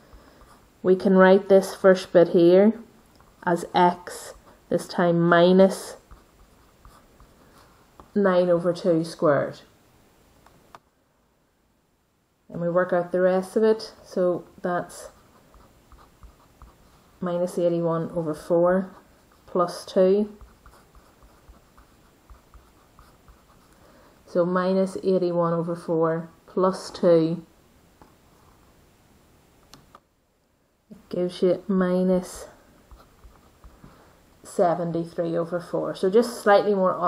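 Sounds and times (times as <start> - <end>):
pen scratching on paper: 3.6 - 8.2, 14.6 - 23.8.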